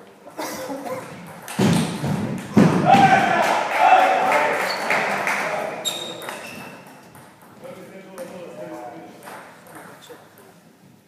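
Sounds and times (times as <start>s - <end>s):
table tennis ball thuds: 1.2s - 3.3s.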